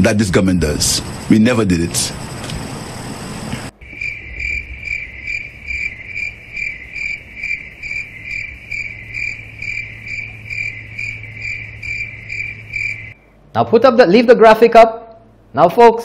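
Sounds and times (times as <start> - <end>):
cricket chirping: 2.2 - 13.2.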